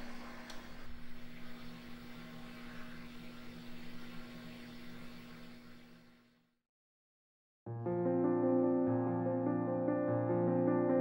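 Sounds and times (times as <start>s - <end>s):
electric oven humming with fan: 0.0s - 6.2s.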